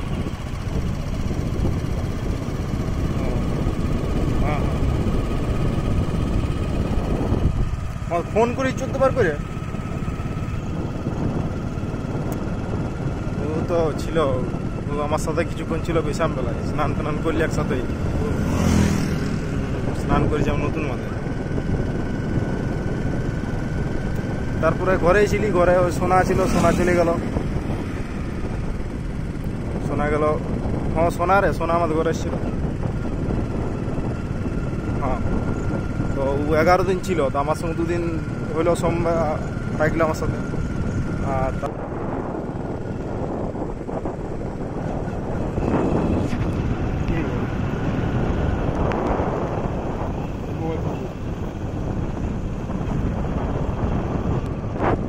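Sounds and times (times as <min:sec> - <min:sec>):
road vehicle rumble: 0:00.0 - 0:55.0
wind buffeting microphone: 0:00.0 - 0:55.0.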